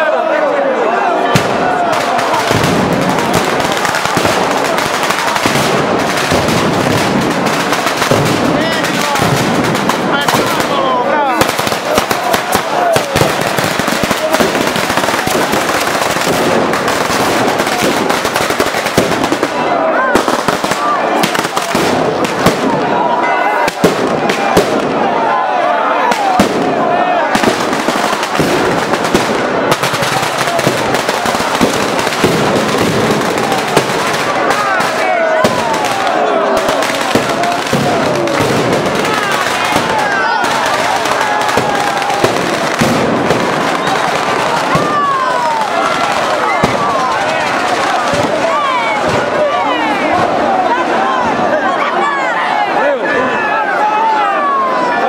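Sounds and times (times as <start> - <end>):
firecrackers crackling: 1.3 - 25.3, 26.0 - 50.6.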